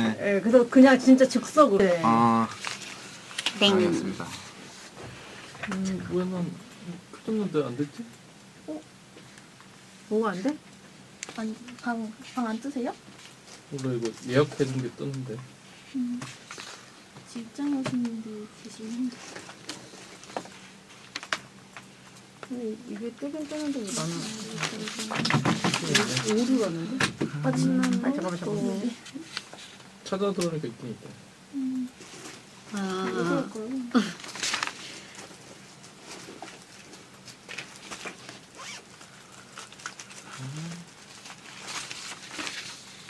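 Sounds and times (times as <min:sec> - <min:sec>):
faint room hum: 0:00.0 - 0:43.0
paper sheets rustling: 0:02.6 - 0:03.7, 0:23.5 - 0:26.7, 0:34.2 - 0:38.5, 0:40.9 - 0:43.0.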